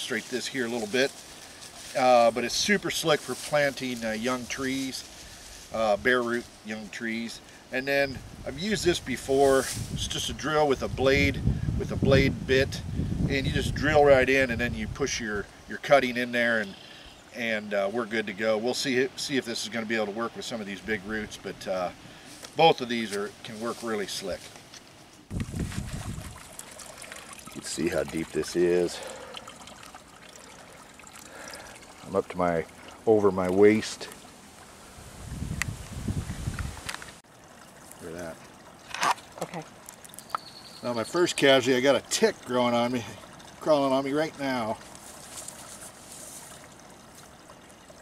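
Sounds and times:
light rustle: 0:00.0 - 0:06.8, 0:22.1 - 0:27.4, 0:44.8 - 0:47.3
outdoor background hiss: 0:00.0 - 0:48.0.

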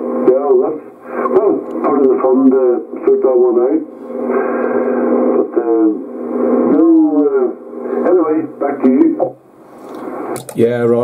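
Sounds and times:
radio band noise: 0:00.0 - 0:11.0.

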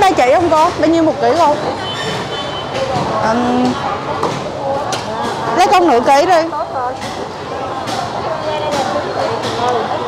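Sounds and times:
market hall background noise: 0:00.0 - 0:10.0.

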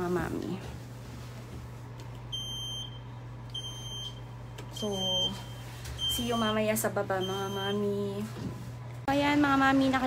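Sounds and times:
elevator beeps: 0:02.3 - 0:08.0.

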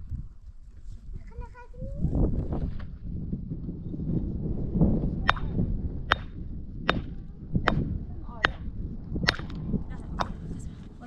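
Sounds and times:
steady low rumble: 0:00.0 - 0:11.0
sharp cracks: 0:05.3 - 0:10.4.

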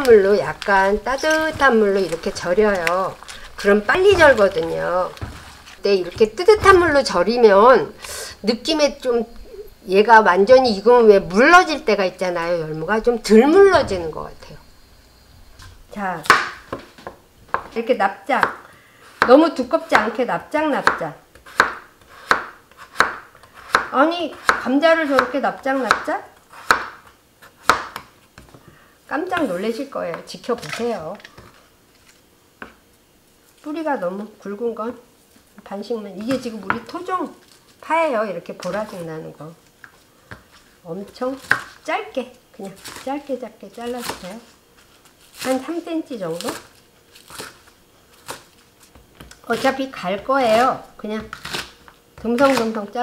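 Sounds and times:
knife slicing potato: 0:20.8 - 0:28.0, 0:45.3 - 0:52.9
knife chopping on cutting board: 0:20.8 - 0:28.1.

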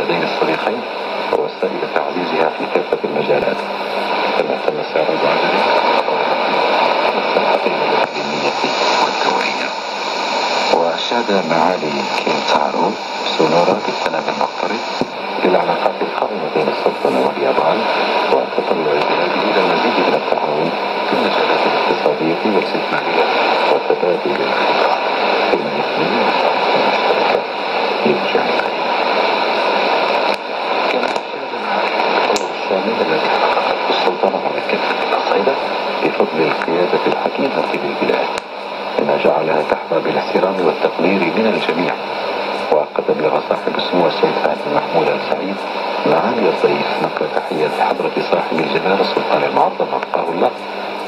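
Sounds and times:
faint announcer voice on radio: 0:00.0 - 0:09.8, 0:10.6 - 0:28.9, 0:30.7 - 0:51.0
radio static hiss: 0:00.0 - 0:51.0.

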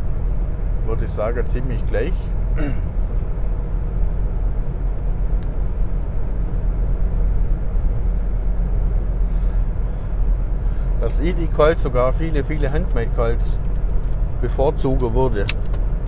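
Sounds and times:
road and engine rumble in car: 0:00.0 - 0:16.0.

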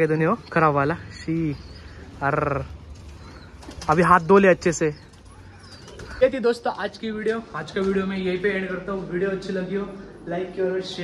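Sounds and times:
pigeons cooing: 0:01.1 - 0:06.7.

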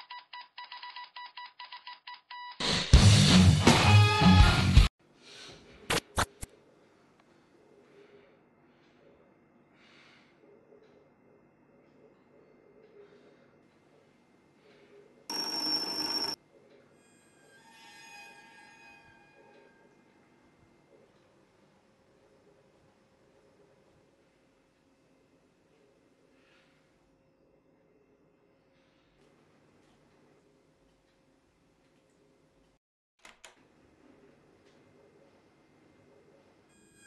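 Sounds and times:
loud electronic ringing burst: 0:15.3 - 0:16.4.

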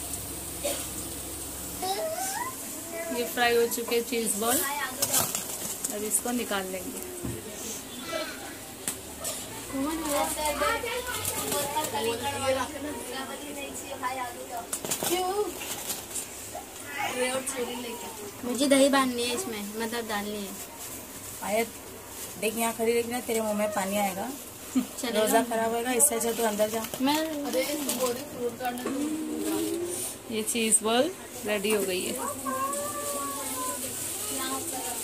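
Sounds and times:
indistinct voices talking: 0:25.6 - 0:34.9.

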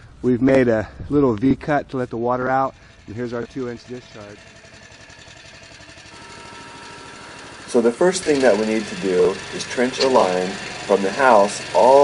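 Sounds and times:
small gasoline engine running: 0:02.2 - 0:12.0.

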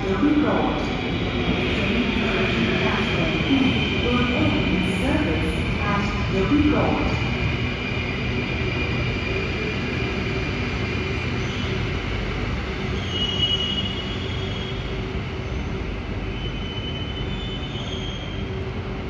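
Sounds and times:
train wheels rumbling: 0:00.0 - 0:19.0
high wheel squeals: 0:12.8 - 0:15.7, 0:16.3 - 0:18.6.

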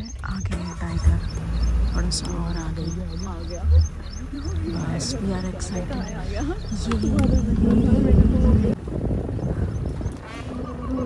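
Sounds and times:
high bird chirps: 0:00.0 - 0:08.7
people talking: 0:00.0 - 0:08.8, 0:10.5 - 0:11.0
low rumble: 0:00.0 - 0:11.0.

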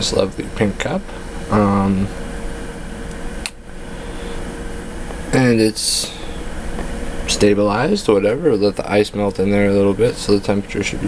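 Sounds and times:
mechanical room hum: 0:00.0 - 0:11.0.

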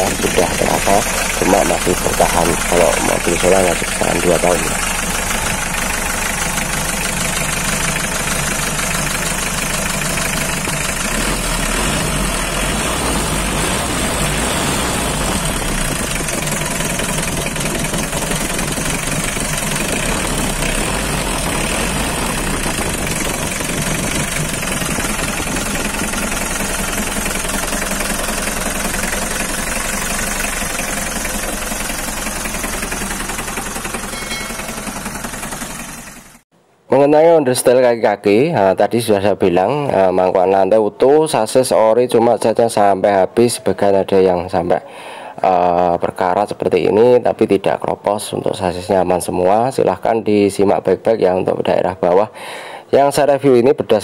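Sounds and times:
diesel engine idling with knock: 0:00.0 - 0:36.4.

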